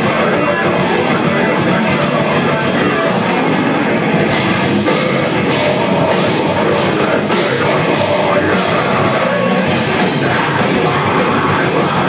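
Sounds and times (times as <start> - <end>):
distorted electric guitars: 0.0 - 12.0
metal band playing live: 0.0 - 12.0
pounding drum kit: 0.0 - 12.0.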